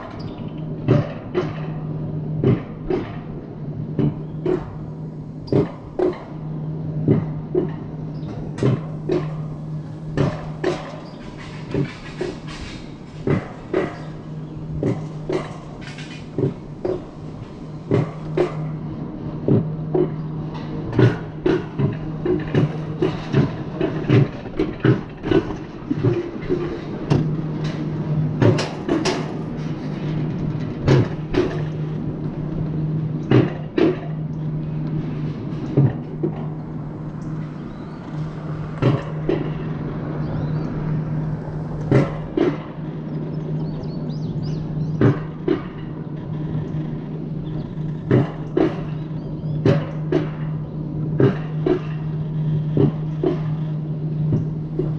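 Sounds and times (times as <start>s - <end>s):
sharp clicks and knocks: 0.0s - 1.8s, 2.4s - 6.4s, 7.0s - 18.8s, 19.4s - 54.9s
coaster sled humming on rail: 0.0s - 54.9s.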